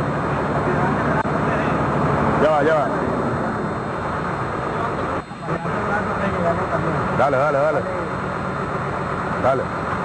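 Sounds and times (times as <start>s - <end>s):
rumbling open-air noise: 0.0s - 10.0s
vehicle engine running: 0.0s - 10.0s.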